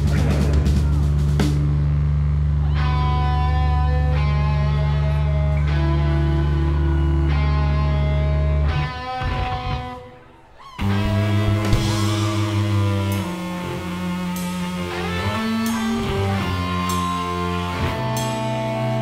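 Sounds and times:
distorted electric guitar chords: 0.0s - 19.0s.

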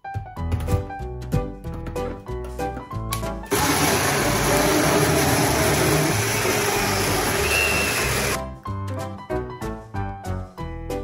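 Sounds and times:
blender whirring: 3.5s - 8.4s.

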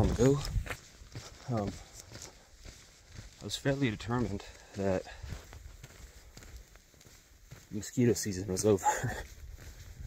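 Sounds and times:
footsteps on a trail: 0.0s - 10.0s.

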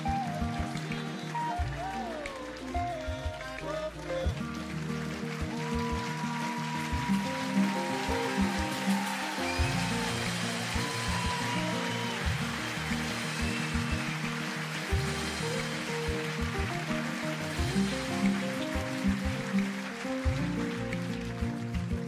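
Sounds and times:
instrumental music with low beats: 12.2s - 22.0s.

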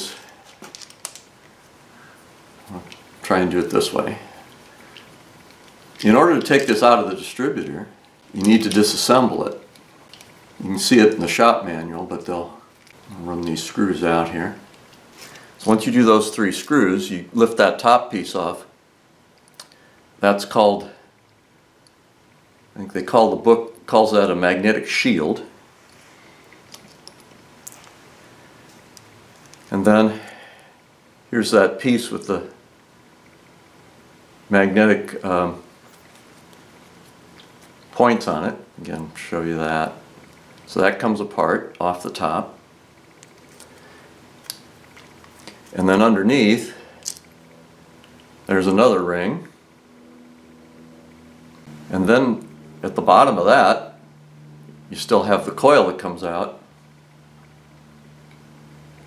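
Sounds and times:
small metal parts clicking: 0.5s - 1.3s, 8.0s - 10.4s, 26.4s - 27.9s, 28.7s - 29.7s, 47.0s - 47.4s.

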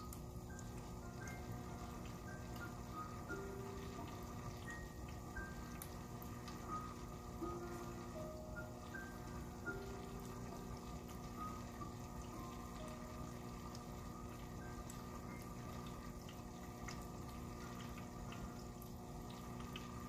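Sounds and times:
fountain water trickling: 0.0s - 20.0s
steady low hum: 0.0s - 20.0s
water drips and splashes: 8.8s - 20.0s.

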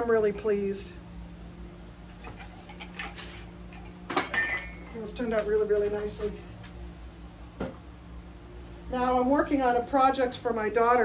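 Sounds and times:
steady low hum: 0.0s - 11.0s
pottery mugs clicking and tapping: 2.3s - 5.5s.

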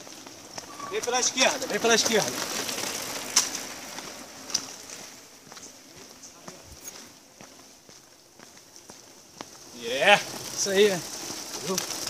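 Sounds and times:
footsteps on gravel: 0.0s - 12.0s
steady high hiss: 0.0s - 12.0s.

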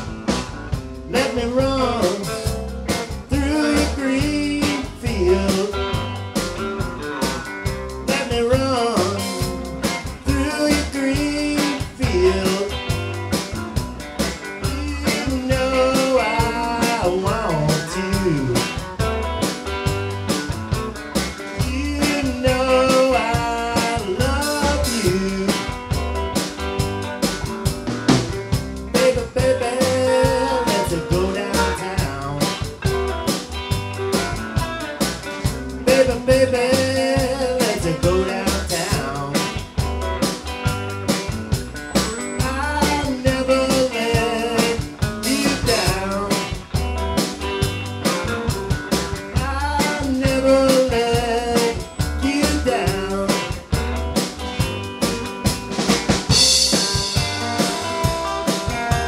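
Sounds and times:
bending electric guitar notes: 0.0s - 59.0s
live blues rock band: 0.0s - 59.0s.

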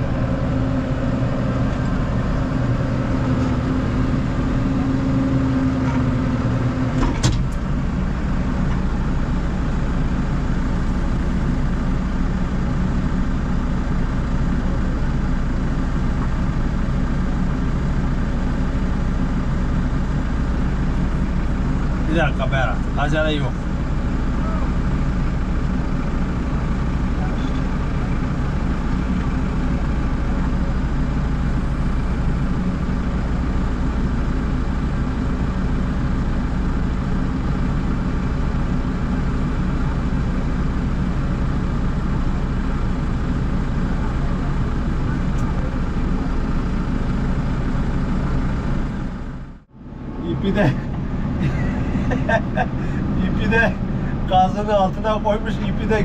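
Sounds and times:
tractor engine running: 0.0s - 56.0s
voices: 24.3s - 25.0s, 26.0s - 31.8s, 50.2s - 56.0s.

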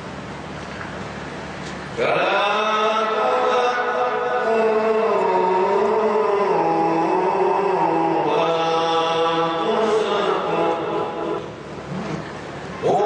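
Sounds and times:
man reciting melodically: 2.0s - 11.6s, 12.8s - 13.0s.

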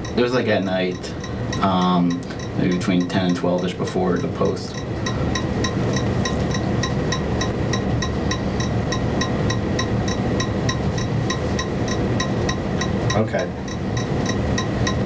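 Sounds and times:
faint ticking: 0.0s - 15.0s
low hum: 0.0s - 15.0s.

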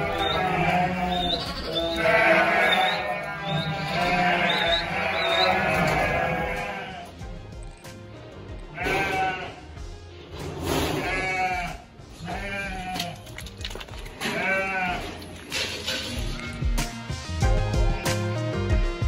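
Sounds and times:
sheep bleating: 0.0s - 7.2s, 8.6s - 9.8s, 11.0s - 15.5s
background music: 0.0s - 19.0s.

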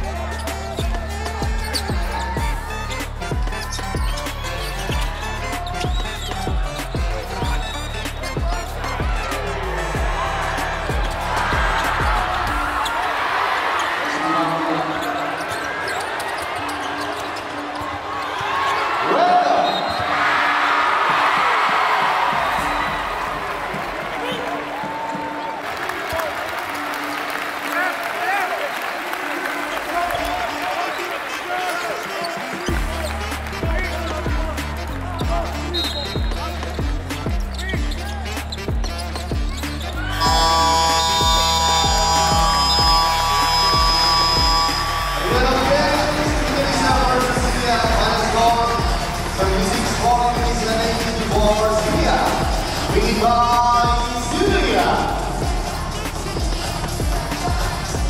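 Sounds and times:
background music with bass beat: 0.0s - 13.0s, 32.7s - 58.0s.

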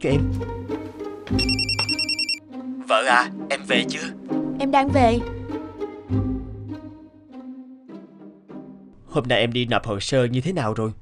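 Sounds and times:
background music: 0.0s - 9.1s
phone ringtone trilling: 1.4s - 2.4s.

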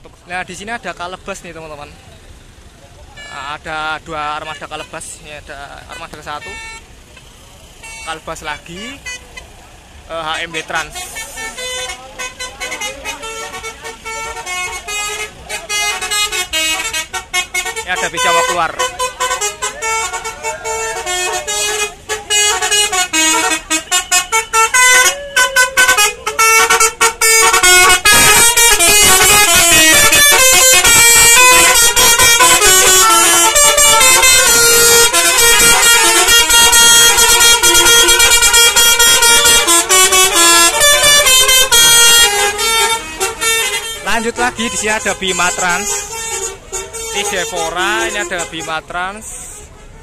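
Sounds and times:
bus horn playing a melody: 3.2s - 9.6s, 10.3s - 50.0s.

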